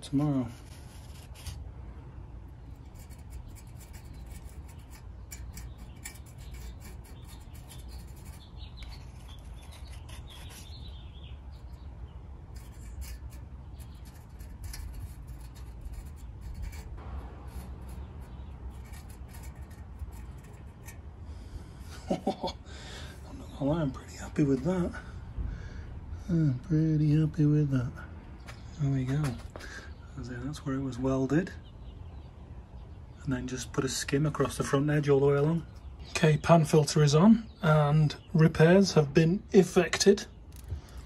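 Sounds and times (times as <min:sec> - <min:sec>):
low steady hum: 0:00.0 - 0:41.0
fingertip rubbing epoxy: 0:00.6 - 0:01.6, 0:02.7 - 0:11.1, 0:12.5 - 0:21.0.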